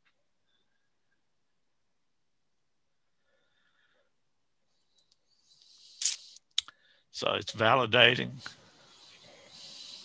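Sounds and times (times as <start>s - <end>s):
short hiss: 5.6s - 6.5s
person speaking: 7.2s - 8.6s.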